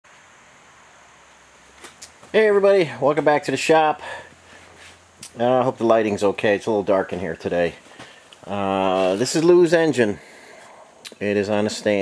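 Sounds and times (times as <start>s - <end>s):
soft hiss: 0.1s - 12.0s.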